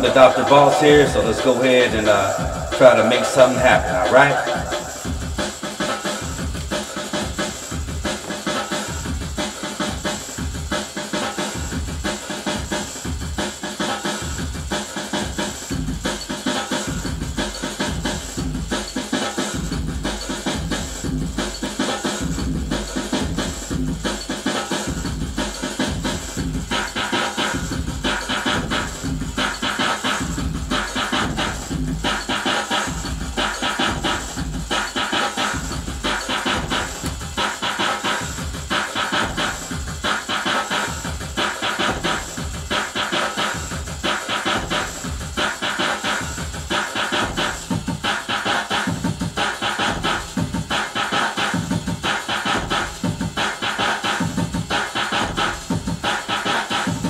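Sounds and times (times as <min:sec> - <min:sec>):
deep bass line: 0:00.0 - 0:05.5
fast electronic drums: 0:00.0 - 0:57.0.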